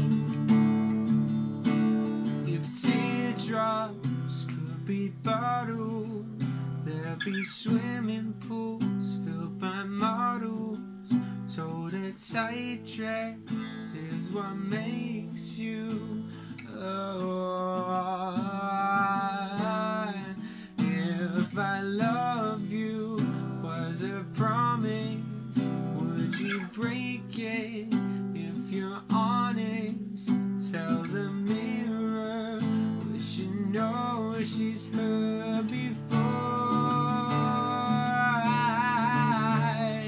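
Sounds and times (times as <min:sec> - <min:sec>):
acoustic guitar strummed: 0:00.0 - 0:40.0
man singing: 0:02.2 - 0:40.0.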